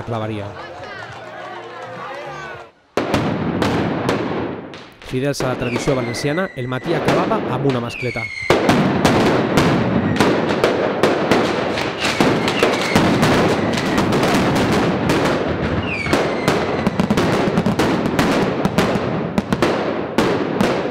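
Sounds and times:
firecrackers cracking: 2.9 - 20.9
falling whistles: 5.6 - 7.3, 7.9 - 8.6, 12.0 - 14.1, 15.8 - 16.7.

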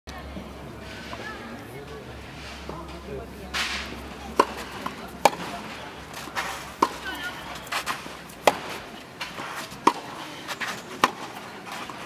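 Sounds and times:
tennis ball struck by racket: 3.6 - 12.0.

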